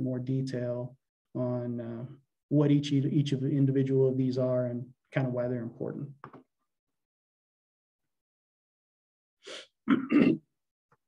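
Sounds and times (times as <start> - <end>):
short breath: 9.4 - 9.8
man clearing his throat: 9.8 - 10.4.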